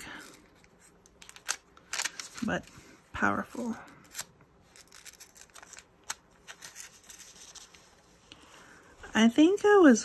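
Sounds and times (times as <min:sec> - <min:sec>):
paper pages rustling: 0:04.1 - 0:08.6.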